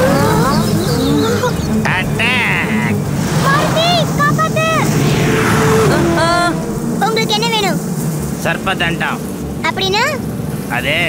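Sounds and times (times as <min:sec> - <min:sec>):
children crying out in fright: 0:00.0 - 0:01.8
swarm of bees buzzing: 0:00.0 - 0:11.0.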